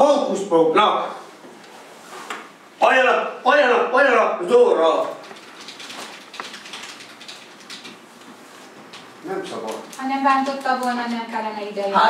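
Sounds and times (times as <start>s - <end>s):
computer keyboard typing: 5.1s - 8.0s.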